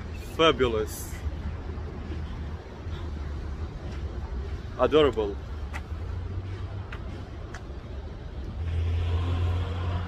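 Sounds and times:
motor vehicle passing: 0:05.9 - 0:10.0.

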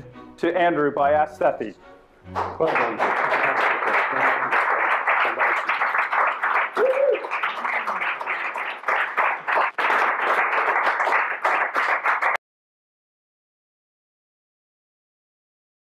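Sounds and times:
audience applauding: 0:02.3 - 0:12.4.

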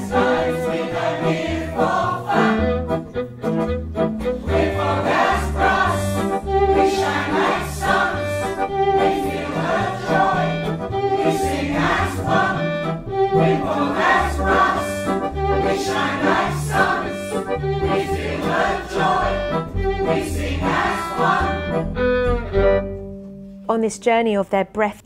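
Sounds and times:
choir singing in harmony: 0:00.0 - 0:03.0, 0:04.4 - 0:21.8
low held bass notes: 0:00.0 - 0:23.6.

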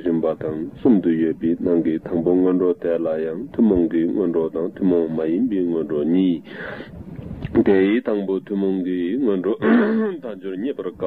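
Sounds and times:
man talking: 0:00.0 - 0:06.6, 0:07.5 - 0:11.0.

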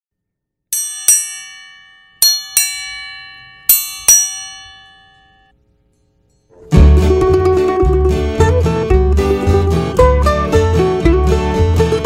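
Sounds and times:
bell strokes ringing: 0:00.8 - 0:06.6.

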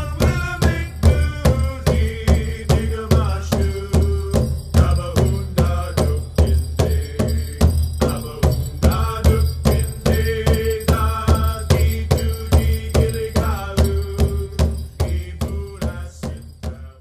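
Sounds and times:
chanted singing: 0:00.0 - 0:16.9
steady drumbeat: 0:00.0 - 0:17.0.

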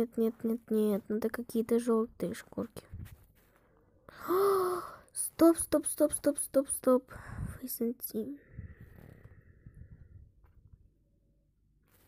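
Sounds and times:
person sighing: 0:04.1 - 0:05.1.

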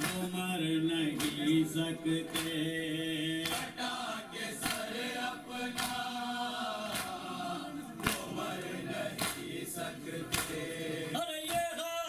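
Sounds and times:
hands slapping chests: 0:00.0 - 0:00.3, 0:01.2 - 0:01.6, 0:02.3 - 0:02.6, 0:03.4 - 0:03.8, 0:04.6 - 0:05.0, 0:05.7 - 0:06.2, 0:06.8 - 0:07.3, 0:08.0 - 0:08.5, 0:09.1 - 0:09.6, 0:10.2 - 0:10.7
men chanting in unison: 0:00.0 - 0:12.0.

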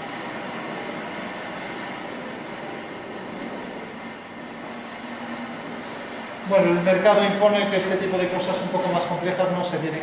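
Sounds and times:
steady room hiss and hum: 0:00.0 - 0:10.0.

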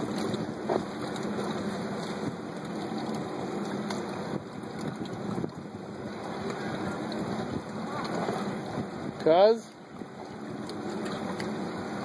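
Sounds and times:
boat engine humming: 0:00.0 - 0:12.0
water washing along hull: 0:00.0 - 0:12.0.

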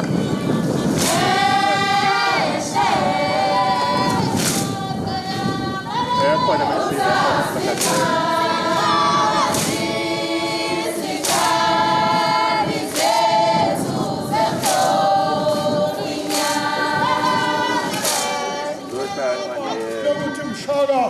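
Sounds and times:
women singing a cappella: 0:00.0 - 0:20.7.

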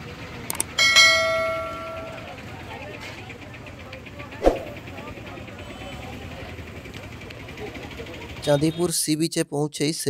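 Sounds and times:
murmur of street crowd: 0:00.0 - 0:10.0.

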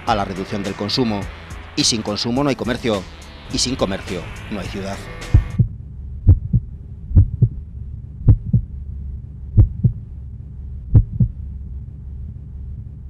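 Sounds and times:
steady low hum: 0:00.0 - 0:13.0
heartbeat thumps: 0:05.3 - 0:08.8, 0:09.5 - 0:10.1, 0:10.8 - 0:11.4.

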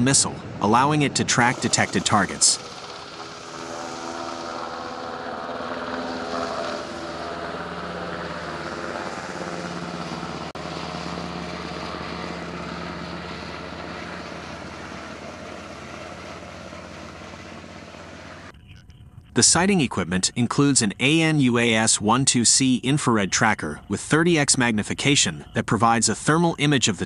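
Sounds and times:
helicopter flying past: 0:00.0 - 0:18.6.

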